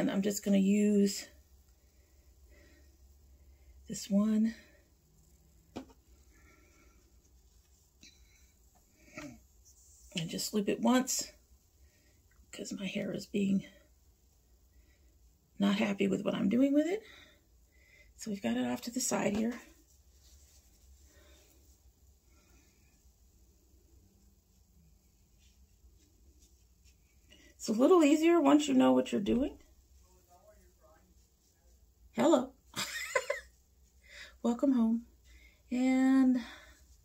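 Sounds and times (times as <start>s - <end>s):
hands rustling in hair: 5.2s - 10.6s, 18.6s - 34.0s.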